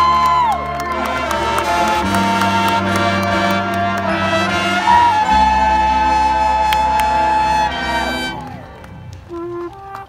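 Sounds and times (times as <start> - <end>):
marching band brass chords: 0.0 - 10.0.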